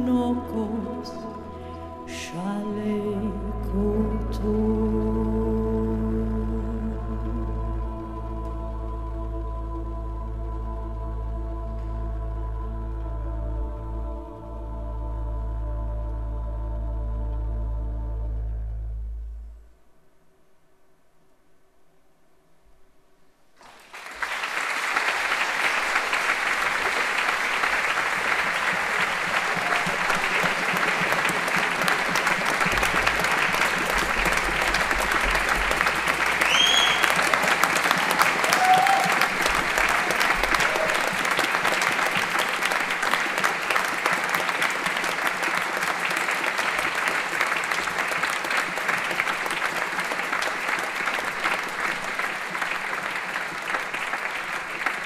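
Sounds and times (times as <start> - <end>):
audience applause: 23.6 - 55.0.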